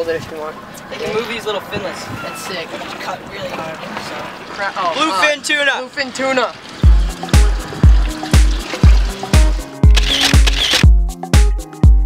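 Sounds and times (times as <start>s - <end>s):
dance music with heavy kick drum: 6.8s - 12.0s.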